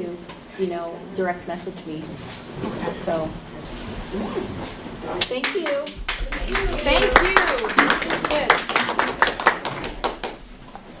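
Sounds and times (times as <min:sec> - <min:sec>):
audience applause: 0:06.1 - 0:10.5.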